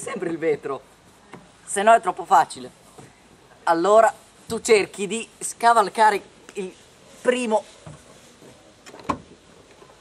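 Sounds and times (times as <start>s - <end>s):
faint background hiss: 0.0s - 10.0s.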